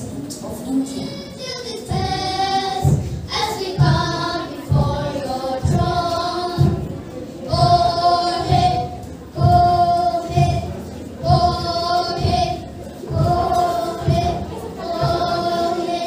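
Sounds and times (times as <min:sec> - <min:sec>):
boys singing together: 0:01.3 - 0:16.0
low rhythmic thud: 0:01.8 - 0:16.0.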